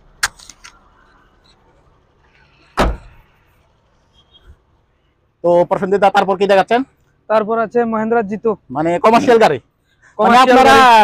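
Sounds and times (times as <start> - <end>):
car door slamming: 2.8 - 3.2.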